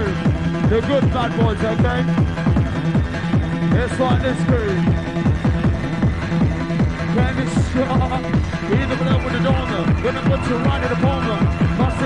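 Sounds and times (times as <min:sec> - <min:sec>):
fast electronic dance music: 0:00.0 - 0:12.0
deep falling-pitch bass hits: 0:02.1 - 0:08.9.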